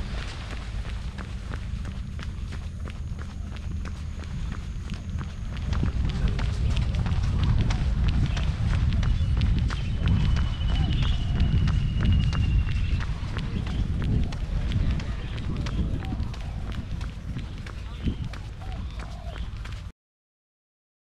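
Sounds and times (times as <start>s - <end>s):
running footsteps: 0.0s - 19.9s
wind rumbling on microphone: 0.0s - 19.9s.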